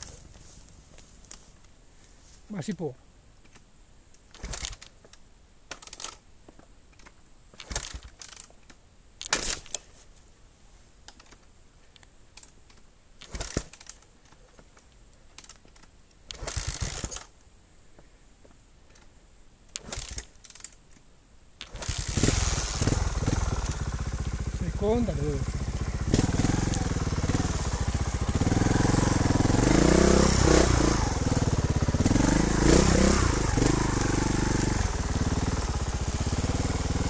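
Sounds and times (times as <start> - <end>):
crunches and rustles in dry grass: 0.0 - 2.8
motorcycle engine starting and running: 21.6 - 37.0.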